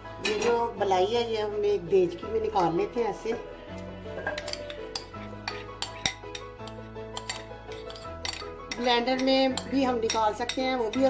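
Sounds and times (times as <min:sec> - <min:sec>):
background music: 0:00.0 - 0:11.0
spoon scraping glass bowl: 0:03.8 - 0:11.0.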